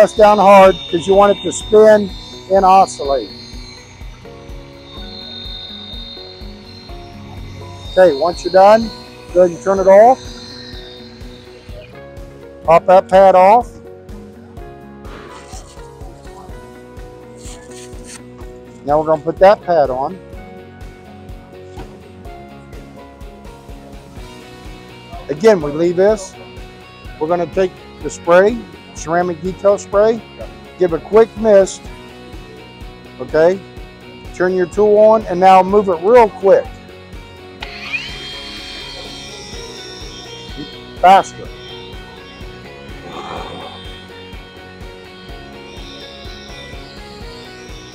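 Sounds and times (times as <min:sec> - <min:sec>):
polisher motor whine: 0:00.0 - 0:14.4, 0:36.2 - 0:47.9
background music with beat: 0:00.0 - 0:47.9
velcro pad rasping scrapes: 0:17.4 - 0:18.3.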